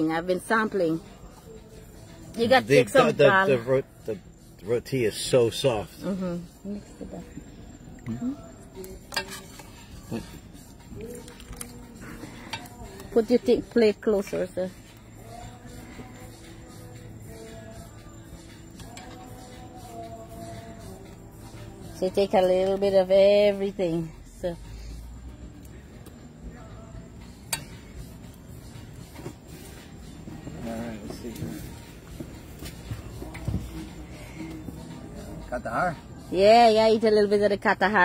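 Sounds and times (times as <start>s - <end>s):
spoon scraping foil trays: 9.0s - 10.4s.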